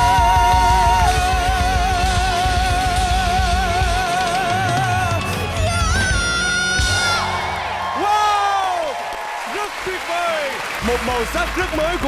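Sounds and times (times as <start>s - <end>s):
audience cheering and whooping: 0.0s - 1.8s, 4.7s - 12.0s
electric guitar and drums: 0.0s - 7.7s.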